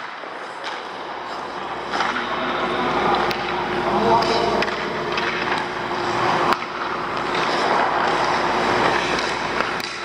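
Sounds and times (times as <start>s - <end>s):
skates scraping on ice: 0.0s - 3.3s, 4.2s - 10.0s.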